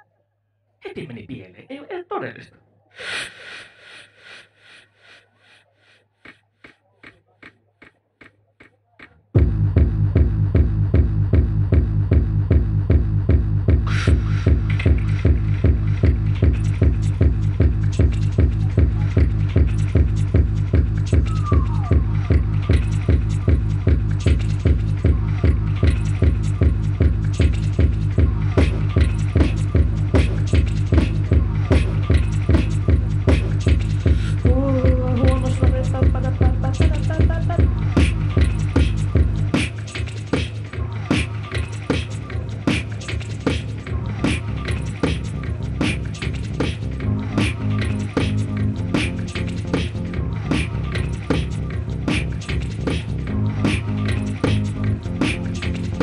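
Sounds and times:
techno beat with heavy bass: 6.3s - 56.0s.

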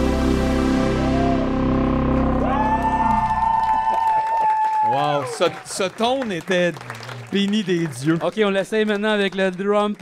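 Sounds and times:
high synthesizer note sliding up: 0.0s - 3.9s
synthesizer low held chords: 0.0s - 3.9s.

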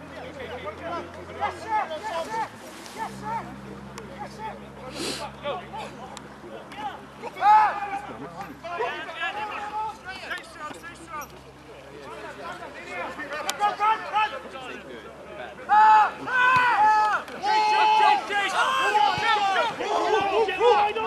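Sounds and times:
spectators' overlapping voices: 0.0s - 21.0s
men shouting: 7.0s - 10.0s, 15.7s - 21.0s.

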